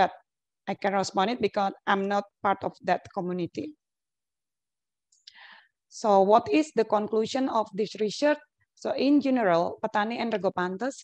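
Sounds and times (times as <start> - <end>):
faint breath drawn in: 5.2 - 5.8.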